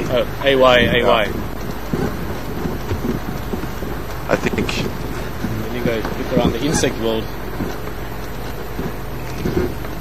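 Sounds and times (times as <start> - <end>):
vehicle jolts and rattles: 0.0 - 10.0
vehicle rumbling on dirt track: 0.0 - 10.0.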